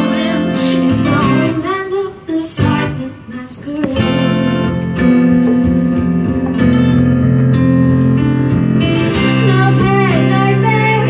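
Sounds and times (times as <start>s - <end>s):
woman singing: 0.0s - 4.8s, 9.2s - 11.0s
acoustic guitar chords: 0.0s - 11.0s.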